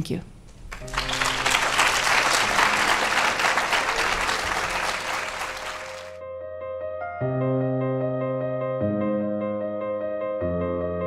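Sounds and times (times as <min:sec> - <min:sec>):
audience applauding: 0:00.6 - 0:06.2
soft keyboard music: 0:00.6 - 0:11.0.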